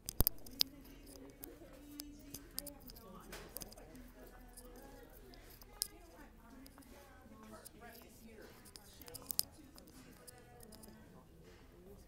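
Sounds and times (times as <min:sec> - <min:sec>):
faint murmur of voices: 0:00.0 - 0:12.0
phone rubbing against fabric: 0:00.2 - 0:11.0.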